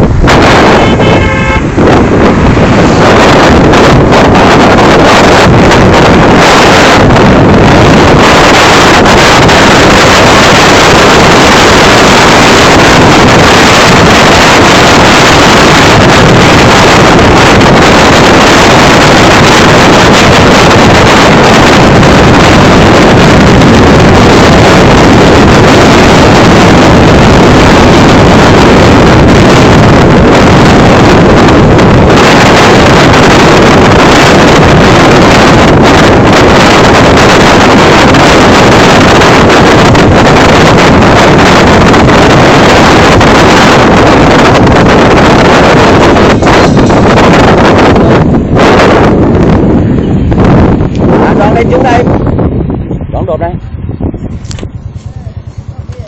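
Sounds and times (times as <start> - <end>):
motorcycle engine: 0.0 - 51.2
road noise: 0.0 - 56.0
wind buffeting microphone: 0.0 - 56.0.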